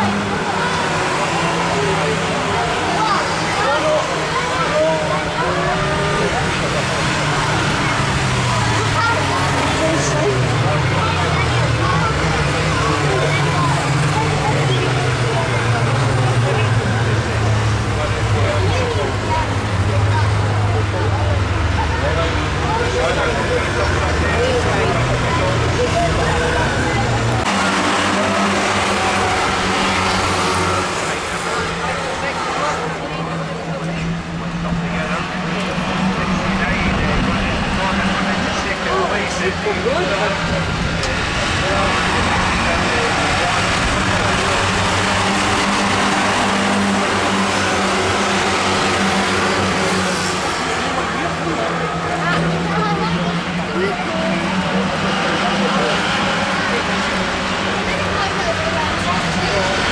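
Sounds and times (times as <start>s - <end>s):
people talking: 0.0s - 59.9s
stock car engines running: 0.0s - 59.9s.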